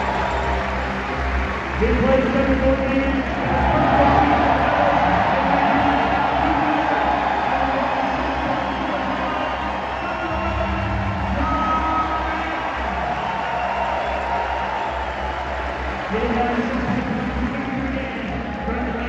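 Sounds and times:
large crowd cheering: 0.0s - 19.0s
music over public address: 0.0s - 19.0s.

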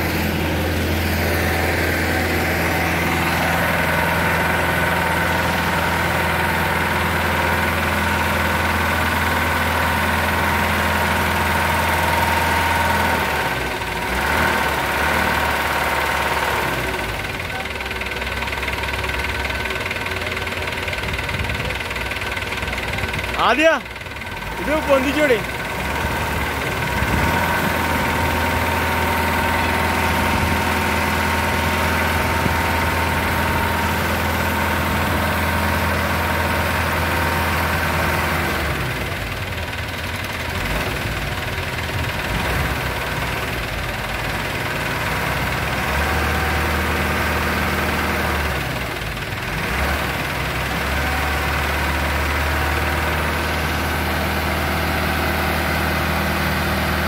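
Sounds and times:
diesel tractor engine running: 0.0s - 57.0s.

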